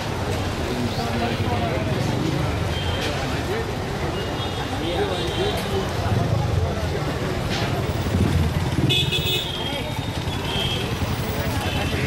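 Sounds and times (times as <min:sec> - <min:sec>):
road traffic engines: 0:00.0 - 0:12.0
voices of passers-by: 0:00.0 - 0:12.0
vehicle horn honking: 0:08.9 - 0:09.8.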